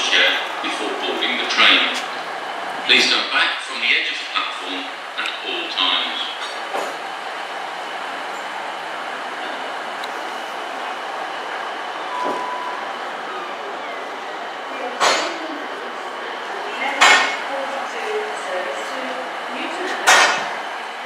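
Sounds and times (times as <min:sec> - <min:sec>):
diesel train engine and wheels: 0:00.0 - 0:21.0
brief high tone: 0:12.1 - 0:15.6.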